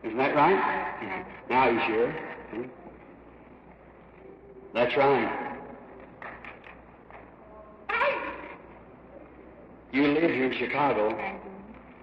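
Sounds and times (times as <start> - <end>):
echoing spoken sound: 0.0 - 3.0, 4.8 - 5.9.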